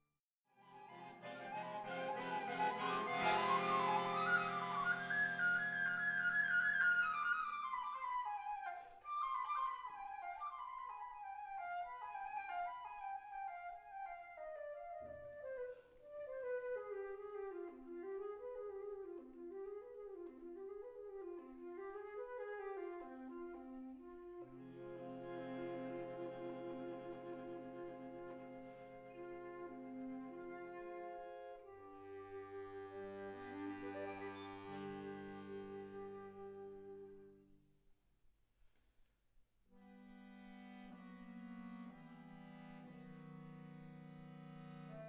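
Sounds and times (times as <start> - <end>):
flute melody: 0.6 - 37.5
accordion chords: 0.9 - 6.8, 24.6 - 37.4, 39.8 - 45.0.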